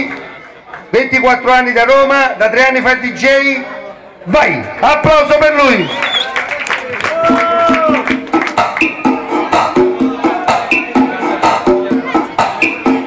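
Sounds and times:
electronic dance music: 6.8s - 13.0s.

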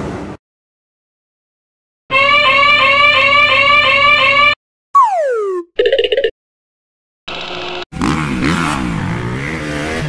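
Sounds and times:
whistle falling in pitch: 5.0s - 5.7s.

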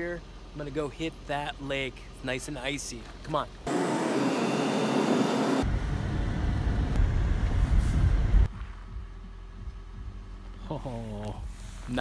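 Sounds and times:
car road and engine noise: 0.0s - 12.0s
deep rumble: 5.6s - 10.7s.

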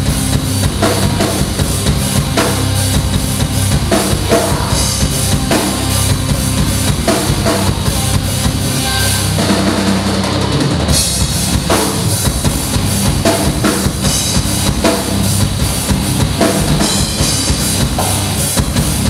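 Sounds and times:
metal band playing live: 0.0s - 19.0s.

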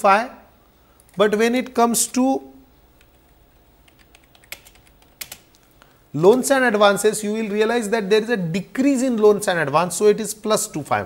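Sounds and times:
keyboard typing clicks: 3.0s - 5.6s.

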